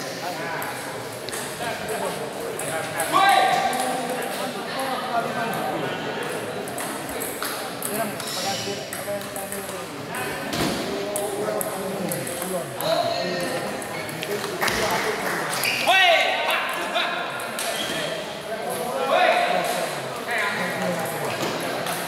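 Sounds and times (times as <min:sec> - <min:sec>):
people talking: 0:00.0 - 0:22.0
table tennis balls clicking: 0:06.2 - 0:09.9, 0:11.1 - 0:14.6.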